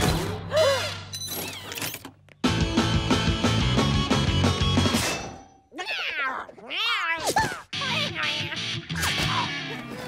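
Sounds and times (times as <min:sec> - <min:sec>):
background music: 0:02.4 - 0:05.6, 0:07.4 - 0:10.0
cartoon cats yowling: 0:05.8 - 0:08.8.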